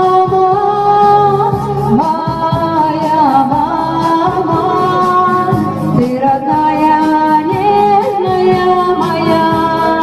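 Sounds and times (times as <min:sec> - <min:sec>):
instrumental accompaniment with beat: 0:00.0 - 0:10.0
person singing slow song: 0:00.0 - 0:10.0.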